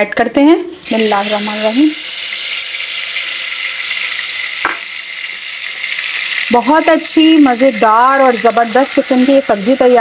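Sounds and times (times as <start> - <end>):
spices sizzling in hot oil: 0.8 - 10.0.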